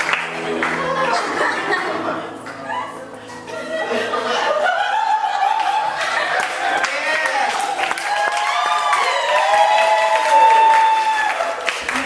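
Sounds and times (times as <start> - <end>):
audience applauding: 0.0 - 2.6, 4.6 - 12.0
whoops and cheers: 4.6 - 12.0.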